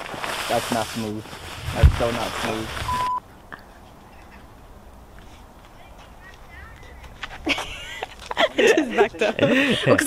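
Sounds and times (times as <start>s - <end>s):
quiet outdoor background: 0.0s - 10.0s
short electronic beep: 2.9s - 3.2s.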